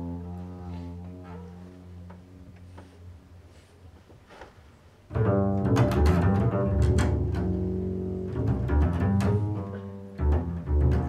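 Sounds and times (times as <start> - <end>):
bowed double bass note: 0.0 - 3.7, 5.1 - 11.0.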